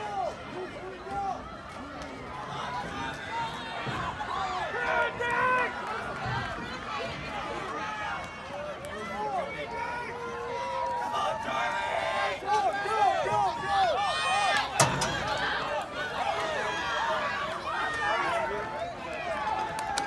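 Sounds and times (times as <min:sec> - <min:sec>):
spectators shouting and cheering: 0:00.0 - 0:20.0.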